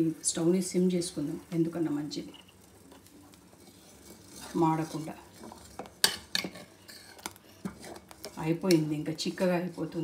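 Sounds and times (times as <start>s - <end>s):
spatula scraping a steel saucepan: 2.2s - 10.0s.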